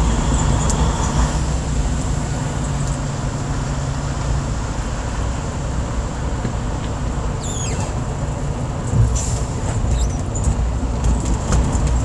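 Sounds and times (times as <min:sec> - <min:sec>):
diesel truck engine rumbling: 0:00.0 - 0:12.0.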